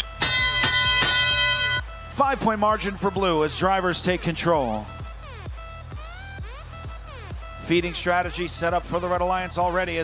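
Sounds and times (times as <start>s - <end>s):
bell-like chime: 0.0s - 2.0s.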